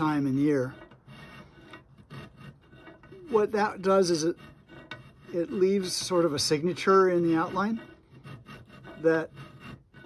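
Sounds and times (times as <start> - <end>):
hand file rasping on metal: 0.0 - 10.0.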